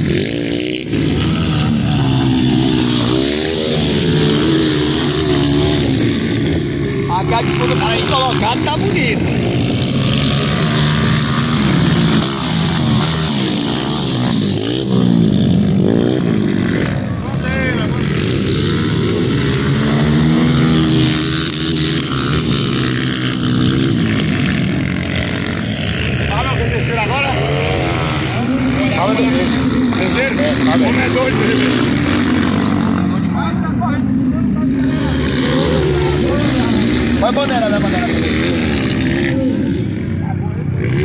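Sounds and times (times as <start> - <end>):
dirt bike engines revving: 0.0 - 41.0.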